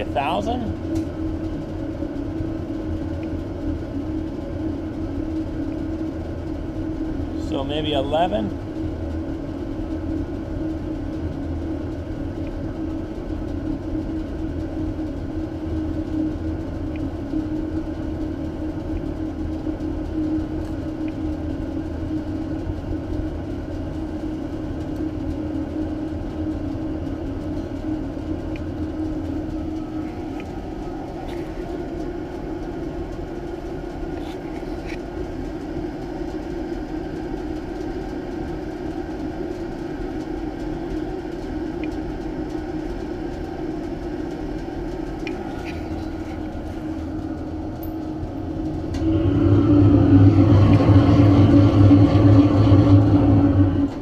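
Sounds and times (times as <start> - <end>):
furnace burner rumble and hum: 0.0 - 54.0.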